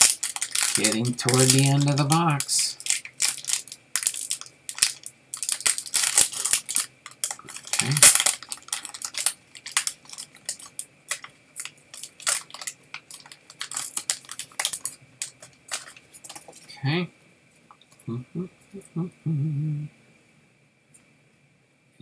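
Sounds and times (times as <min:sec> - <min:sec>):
wrapper crinkling and tearing: 0:00.0 - 0:16.7
low vocal sound: 0:18.0 - 0:20.0.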